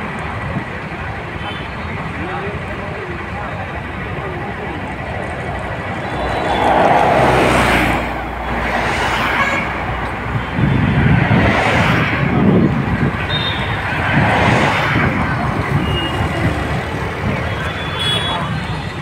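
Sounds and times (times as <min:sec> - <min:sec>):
road traffic passing: 0:00.0 - 0:19.0.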